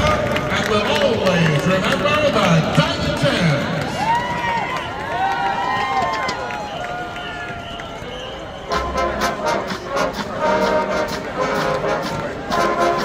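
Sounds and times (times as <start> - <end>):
crowd chatter: 0.0 - 13.0
marching band brass and drums: 1.5 - 13.0.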